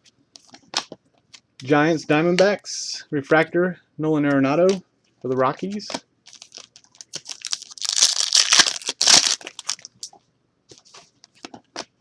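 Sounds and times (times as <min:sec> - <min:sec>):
card pack wrapper tearing: 0:06.3 - 0:10.0.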